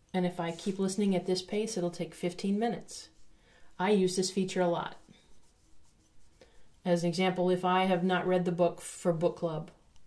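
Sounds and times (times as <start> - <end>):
woman speaking: 0.1 - 3.2, 3.8 - 5.1, 6.8 - 9.8
faint soft rubbing: 0.3 - 7.8.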